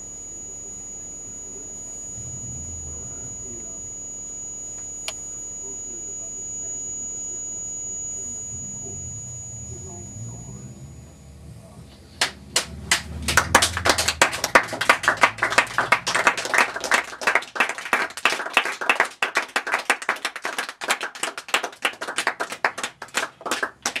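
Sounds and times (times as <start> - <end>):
low hum: 0.0 - 18.2
audience applauding: 12.2 - 24.0.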